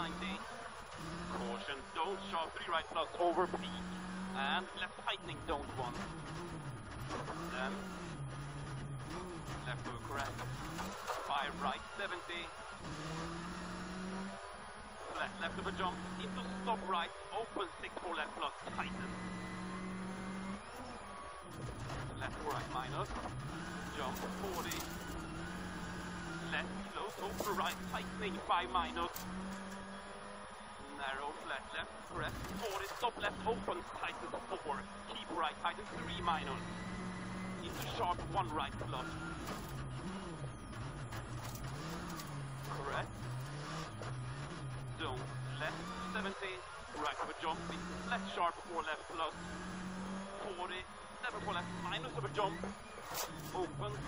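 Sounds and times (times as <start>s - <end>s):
car engine at high revs: 0.0s - 54.0s
gravel road noise: 0.0s - 54.0s.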